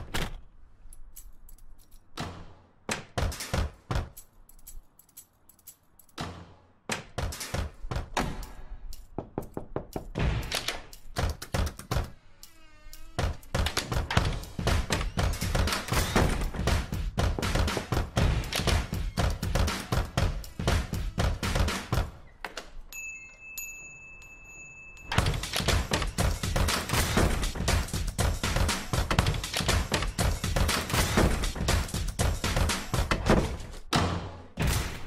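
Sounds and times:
drum-led music: 0:13.5 - 0:22.2, 0:25.2 - 0:33.4.

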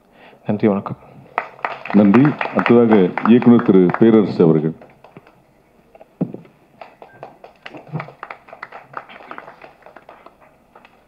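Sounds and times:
small audience clapping: 0:01.3 - 0:05.4, 0:06.8 - 0:11.0.

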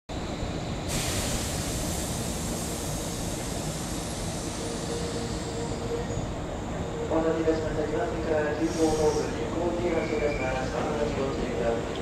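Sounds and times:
electric train rolling: 0:00.2 - 0:10.2
hiss: 0:00.9 - 0:05.3, 0:08.6 - 0:09.3.

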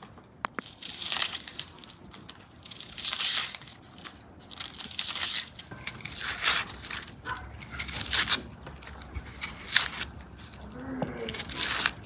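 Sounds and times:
onion skin crackling and tearing: 0:00.0 - 0:12.0
knife scraping onion: 0:04.6 - 0:12.0.

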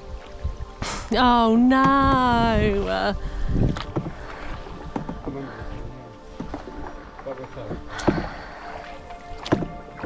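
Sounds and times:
paddle pulling through water: 0:00.0 - 0:10.0
small splashes and drips: 0:02.0 - 0:10.0.

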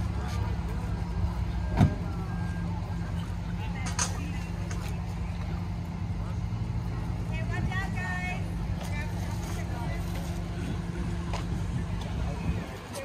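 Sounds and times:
bystanders' voices: 0:00.0 - 0:13.0
vehicle engine idling: 0:00.0 - 0:13.0.

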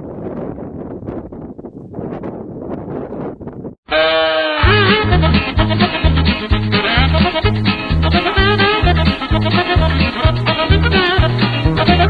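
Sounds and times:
wind buffeting microphone: 0:00.0 - 0:03.8
loud lively music: 0:04.6 - 0:12.0.

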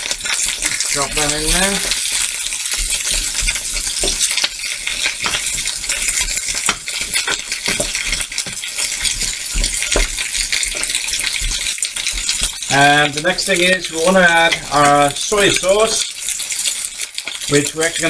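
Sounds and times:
food sizzling in frying pan: 0:00.0 - 0:18.0
wooden spoon scraping pan: 0:00.3 - 0:12.7.

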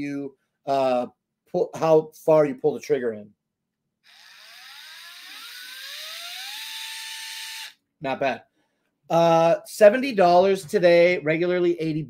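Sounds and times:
cordless screwdriver motor whine: 0:04.1 - 0:07.8.

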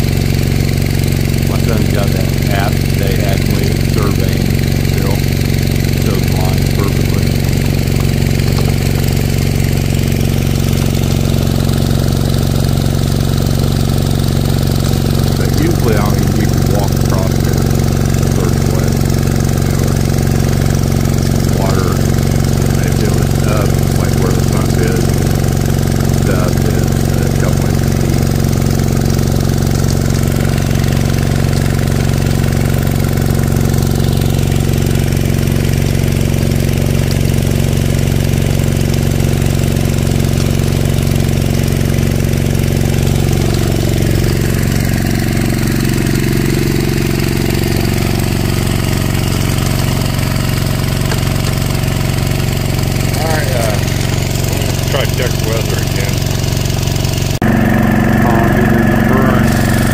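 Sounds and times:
small engine running: 0:00.0 - 0:59.9.

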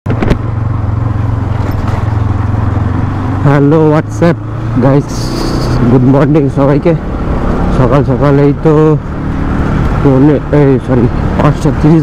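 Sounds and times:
motorcycle engine running: 0:00.1 - 0:12.0.

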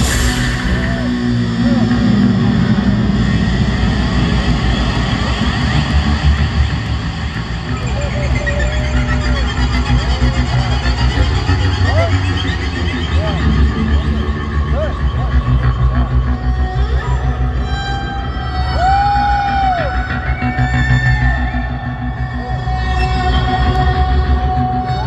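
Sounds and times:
steady low bass: 0:00.0 - 0:25.0.

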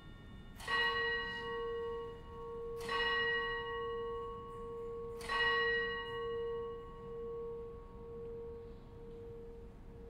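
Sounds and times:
church bell ringing: 0:00.0 - 0:10.0.

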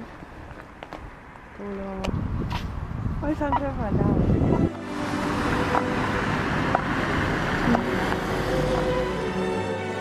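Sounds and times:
footsteps on frosty tarmac: 0:00.0 - 0:03.8.

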